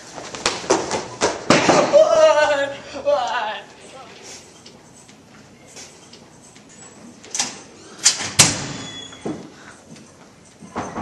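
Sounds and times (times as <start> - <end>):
metal lockers slamming: 7.3 - 9.4, 10.6 - 11.0.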